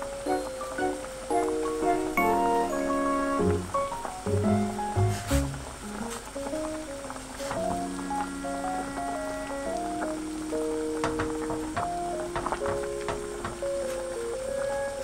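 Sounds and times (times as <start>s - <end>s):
light background music: 0.0s - 15.0s.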